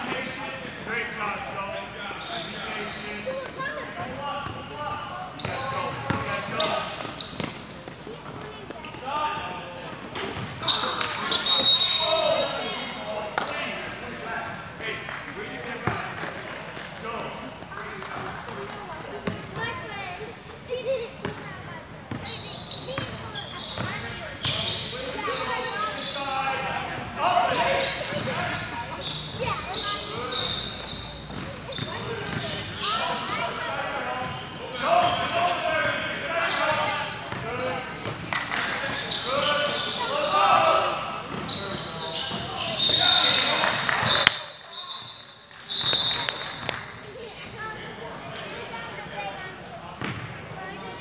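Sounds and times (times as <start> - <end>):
referee's whistle blast: 10.7 - 12.8, 42.7 - 46.4.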